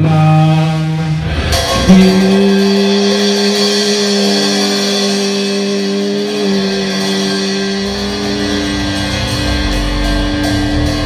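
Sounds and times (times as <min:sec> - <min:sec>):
electric guitar chord ringing: 0:00.0 - 0:11.0
low rumble: 0:01.0 - 0:11.0.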